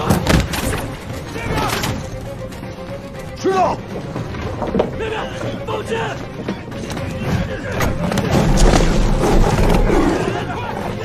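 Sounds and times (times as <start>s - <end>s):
dramatic orchestral score: 0.0s - 11.0s
people shouting: 9.2s - 11.0s.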